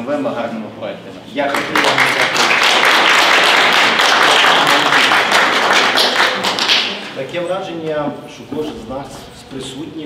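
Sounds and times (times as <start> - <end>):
audience applause: 1.5 - 7.0.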